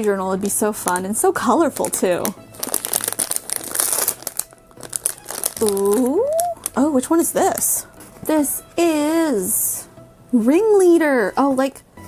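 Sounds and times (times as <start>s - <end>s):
foil wrapper crinkling: 0.8s - 7.7s.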